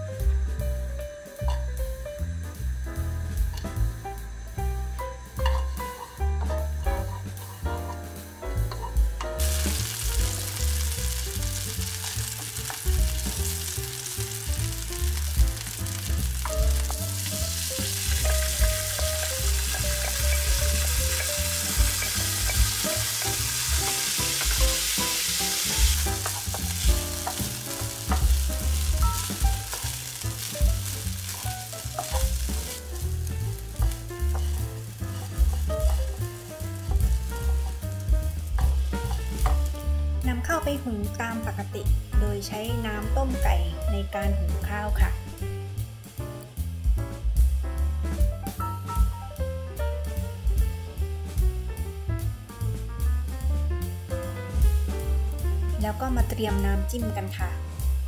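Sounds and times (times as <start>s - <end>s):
food sizzling in a frying pan: 0.0s - 47.6s, 52.2s - 58.0s
wooden spoon stirring: 16.4s - 39.7s.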